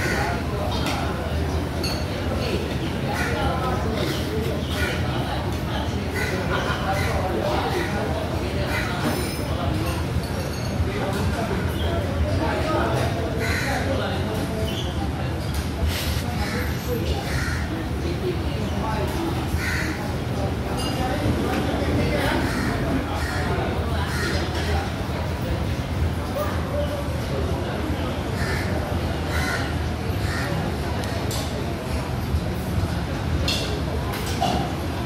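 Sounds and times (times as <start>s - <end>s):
background chatter of diners: 0.0s - 35.0s.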